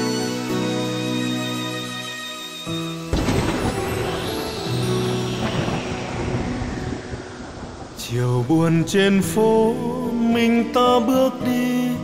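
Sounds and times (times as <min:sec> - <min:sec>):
instrumental music: 0:00.0 - 0:07.7
heavy rain hissing: 0:03.2 - 0:10.3.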